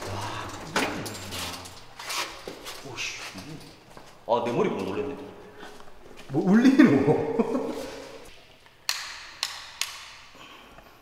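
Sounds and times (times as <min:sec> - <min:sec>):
sharp taps ringing in a room: 0:08.8 - 0:10.4.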